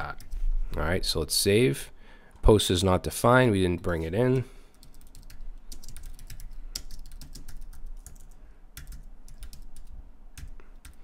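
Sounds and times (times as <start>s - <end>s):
keyboard typing: 4.7s - 11.0s.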